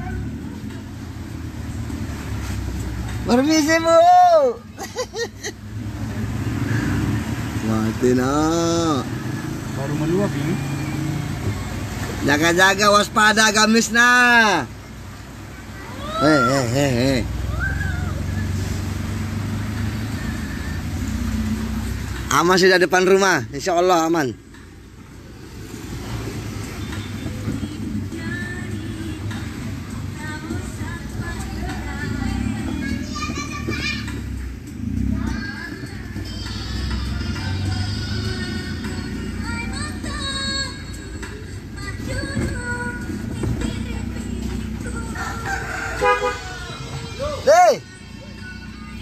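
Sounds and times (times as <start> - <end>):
car engine running: 0.0 - 49.0.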